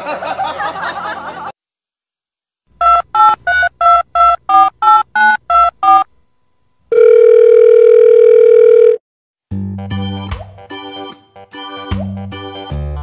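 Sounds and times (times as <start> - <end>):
steady dial tone: 6.9 - 9.0.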